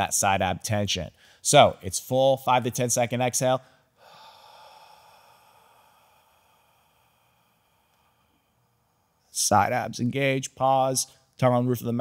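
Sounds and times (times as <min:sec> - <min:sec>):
person sighing exhale: 0:04.0 - 0:08.6.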